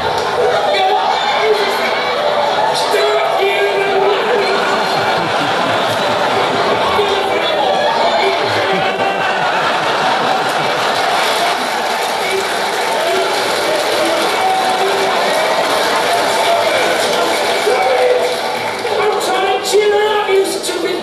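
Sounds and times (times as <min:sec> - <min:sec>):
crowd noise: 0:00.0 - 0:21.0
voices: 0:00.0 - 0:21.0.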